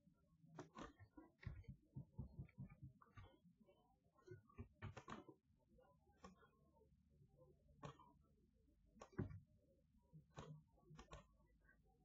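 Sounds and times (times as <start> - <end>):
computer mouse clicks: 0.6 - 3.4, 4.2 - 5.4, 7.8 - 8.2, 9.0 - 9.4, 10.3 - 11.5.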